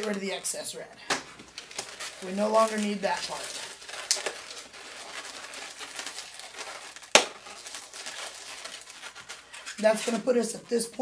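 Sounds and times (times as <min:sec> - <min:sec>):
balloons squeaking and rubbing: 0:00.0 - 0:11.0
balloon snapping: 0:05.8 - 0:07.7.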